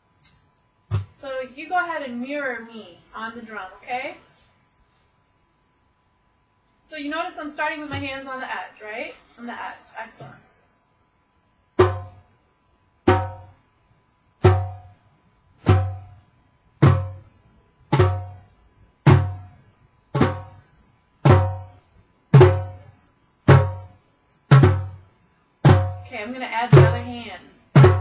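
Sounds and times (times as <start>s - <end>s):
djembe drum strokes: 11.8s - 12.2s, 13.1s - 13.6s, 14.4s - 15.0s, 15.6s - 16.2s, 16.8s - 17.2s, 17.9s - 20.6s, 21.2s - 22.9s, 23.5s - 25.0s, 25.6s - 26.1s, 27.8s - 28.0s.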